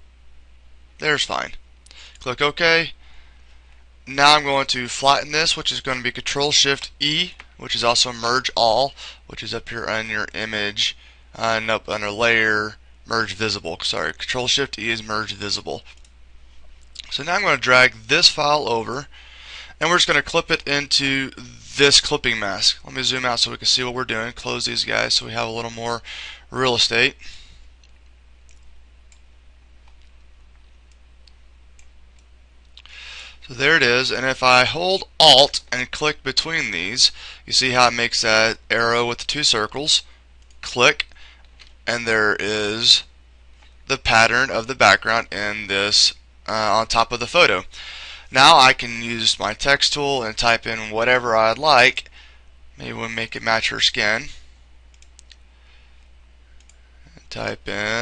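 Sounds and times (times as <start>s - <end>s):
steady low hum: 0.0s - 58.0s
computer mouse clicks: 54.9s - 55.4s.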